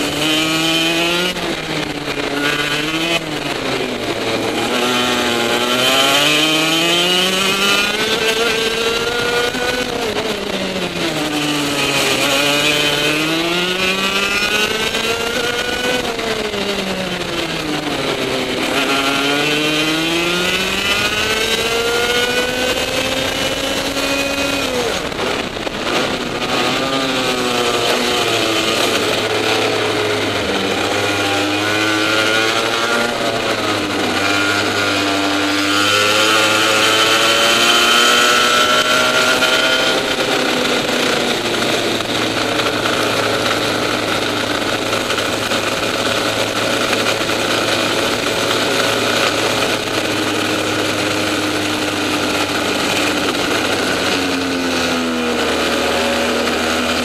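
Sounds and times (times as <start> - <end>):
kart engine at race speed: 0.0 - 57.0.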